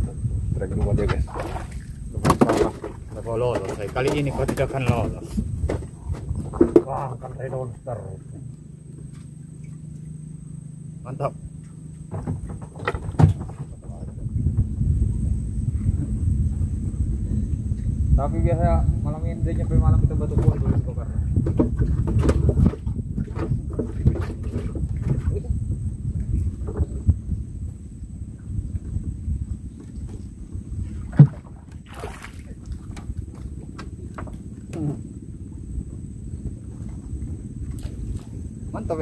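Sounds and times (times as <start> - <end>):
water rumbling around boat hull: 0.0 - 39.0.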